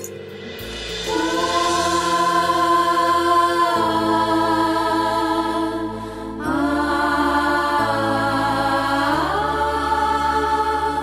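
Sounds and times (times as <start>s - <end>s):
choir-like chord: 0.0s - 11.0s
low drone: 0.0s - 11.0s.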